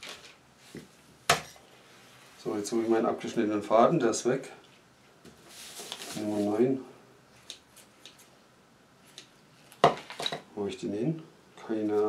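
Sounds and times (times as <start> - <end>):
hard objects clattering on table: 9.8 - 10.5.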